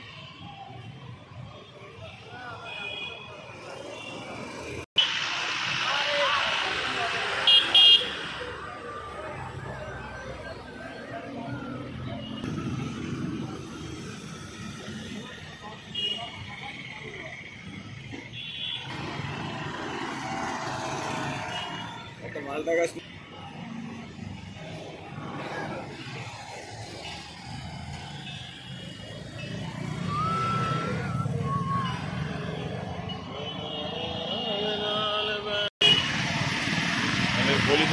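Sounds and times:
voices: 0.0s - 35.7s
outdoor noise: 0.0s - 37.9s
vehicle horns honking: 2.6s - 4.4s, 7.3s - 8.4s, 15.8s - 16.5s, 18.3s - 19.0s, 21.3s - 22.1s, 32.5s - 36.1s.

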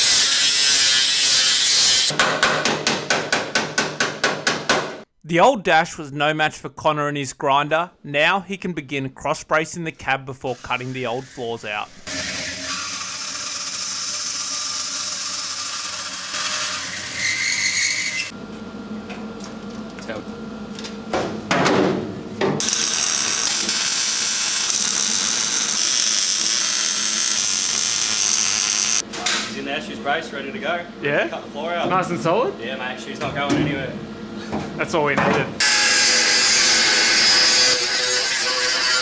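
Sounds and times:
bandsaw cutting metal: 0.0s - 2.2s, 10.4s - 18.3s, 22.6s - 29.0s, 35.6s - 39.0s
workshop noise: 0.0s - 39.0s
welder crackling hiss: 22.6s - 29.0s.

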